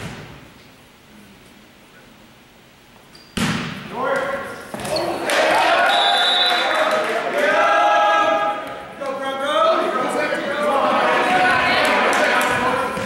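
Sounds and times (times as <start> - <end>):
volleyball struck hard: 3.4 - 3.9
people shouting and cheering: 4.8 - 13.0.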